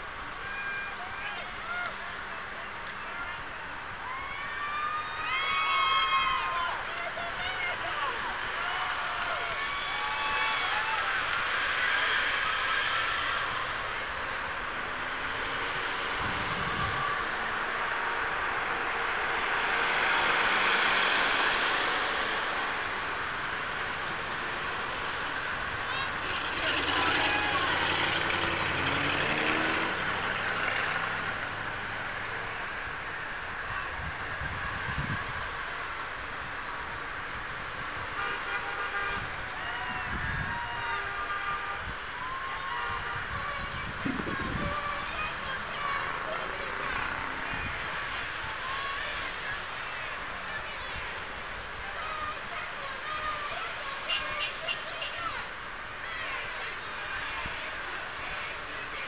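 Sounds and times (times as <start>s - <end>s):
car engines passing: 0.0s - 59.0s
crowd voices: 0.0s - 59.0s
bus driving past: 8.0s - 38.0s, 41.4s - 54.6s.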